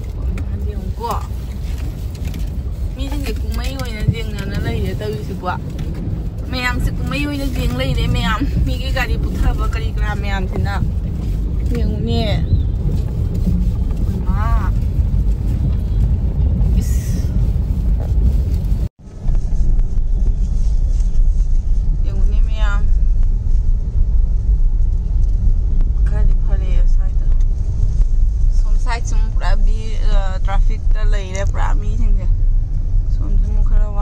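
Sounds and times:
voices: 0.0s - 1.4s, 3.0s - 5.7s, 6.5s - 10.9s, 11.6s - 12.6s, 14.1s - 14.8s, 28.6s - 32.3s
car cabin rumble: 0.0s - 34.0s.

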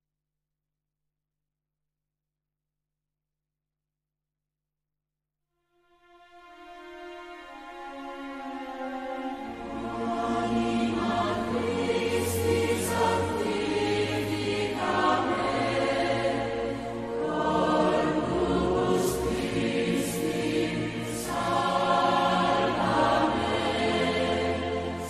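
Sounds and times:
choir singing a hymn: 7.6s - 25.0s.

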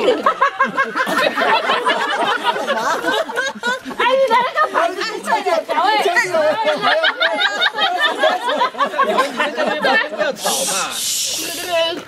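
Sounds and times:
people chattering: 0.0s - 12.0s
person hushing: 10.4s - 11.7s.

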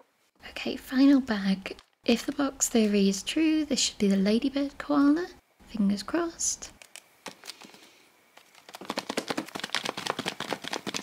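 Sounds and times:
plastic pieces rattling in foil bag: 8.4s - 11.0s.

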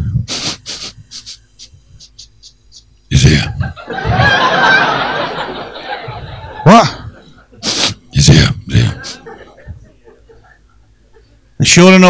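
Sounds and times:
man panting into microphone: 0.0s - 2.2s, 6.9s - 8.0s.

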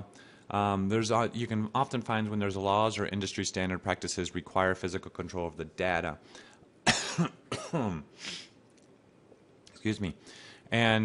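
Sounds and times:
short breath: 0.1s - 0.5s, 6.2s - 6.7s, 8.2s - 8.6s, 10.2s - 10.7s
man coughing: 6.8s - 8.5s.

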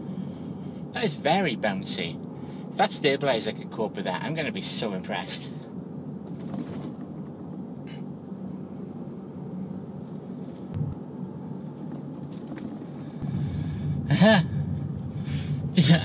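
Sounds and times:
car cabin road rumble: 0.0s - 16.0s.

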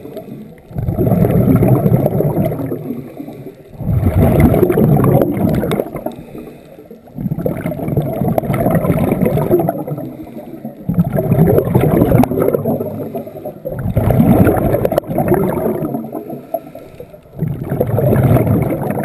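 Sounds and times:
bursts of bubbles: 0.7s - 6.2s, 7.1s - 10.2s, 10.8s - 16.4s, 17.3s - 19.0s
diver breathing through regulator: 2.8s - 4.2s, 5.8s - 7.2s, 9.8s - 10.9s, 12.8s - 14.1s, 16.0s - 17.5s.

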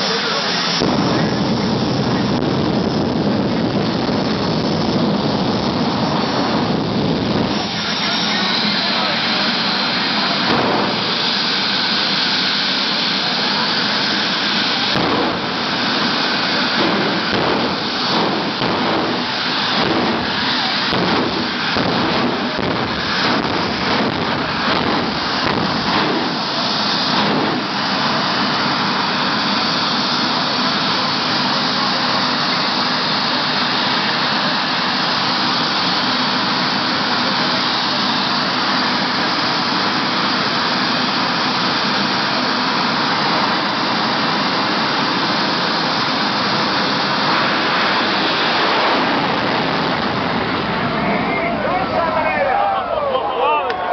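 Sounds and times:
engine crackling: 0.0s - 53.9s
jet turbine engine running: 0.0s - 53.9s.

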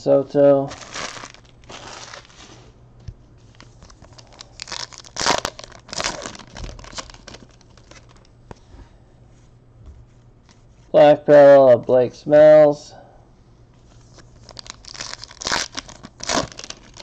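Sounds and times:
foil wrapper crinkling and tearing: 0.7s - 2.6s, 3.4s - 8.3s, 14.0s - 17.0s.

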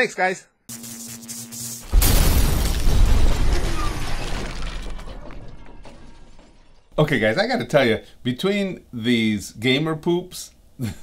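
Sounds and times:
glass shattering: 1.9s - 6.9s.

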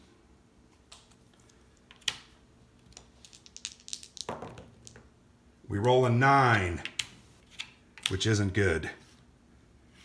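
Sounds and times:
dice rolling on a tabletop: 1.9s - 5.1s.

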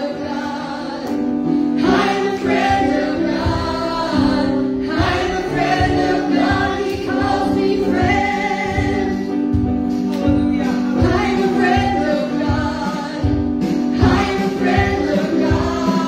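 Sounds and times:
woman singing into microphone: 0.0s - 9.5s, 11.0s - 13.4s.

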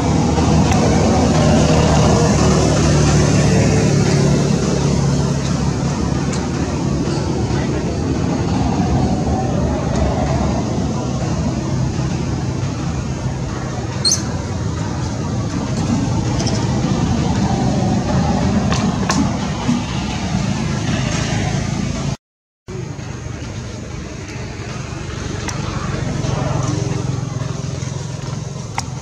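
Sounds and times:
faint indistinct murmuring: 0.0s - 20.2s.

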